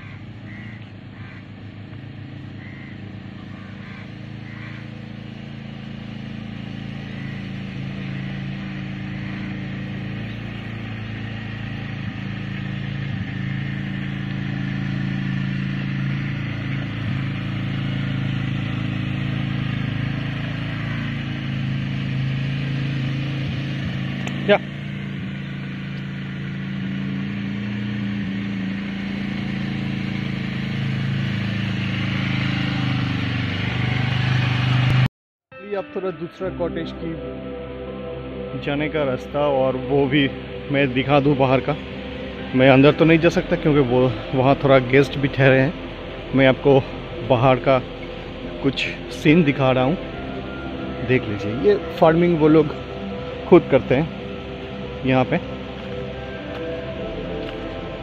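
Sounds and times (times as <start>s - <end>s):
vehicle engine running: 0.0s - 35.1s, 36.4s - 58.0s.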